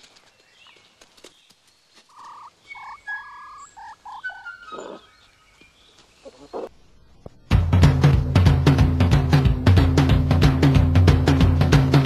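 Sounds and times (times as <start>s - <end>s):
bird chirps: 0.2s - 6.8s
fox whining calls: 2.1s - 5.3s.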